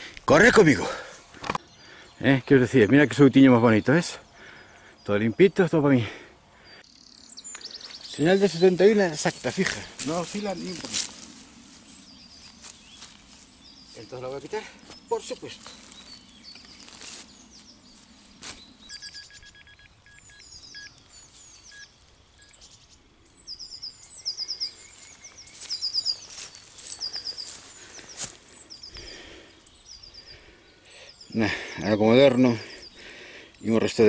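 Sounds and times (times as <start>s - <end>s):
songbirds chirping: 0.0s - 34.0s.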